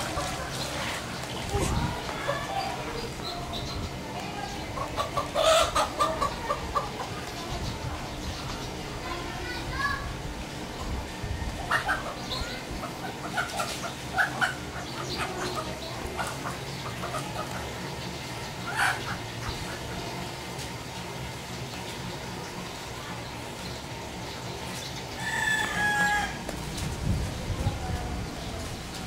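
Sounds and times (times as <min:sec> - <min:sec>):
chickens calling: 0:00.0 - 0:29.0.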